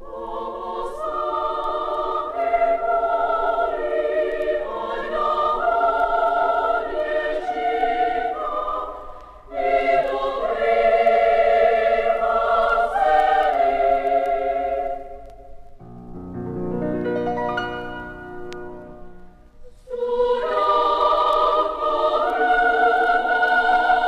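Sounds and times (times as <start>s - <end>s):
children's choir singing: 0.0s - 15.3s, 19.6s - 24.0s.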